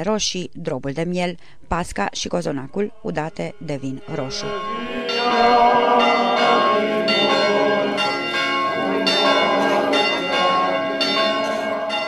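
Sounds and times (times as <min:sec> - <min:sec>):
church bells ringing: 0:04.0 - 0:12.0.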